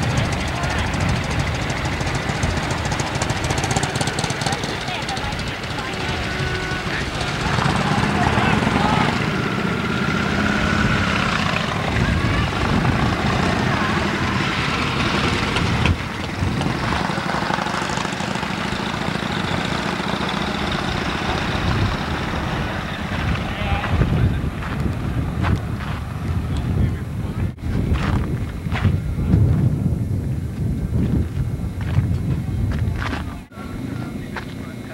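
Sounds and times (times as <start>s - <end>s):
background voices: 0.0s - 34.9s
constant rushing noise: 0.0s - 34.9s
motorcycle engines running: 0.0s - 34.9s.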